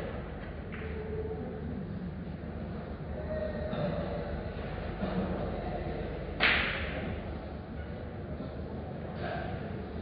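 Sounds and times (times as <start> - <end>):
low room hum: 0.0 - 10.0
cue striking pool ball: 6.4 - 7.0.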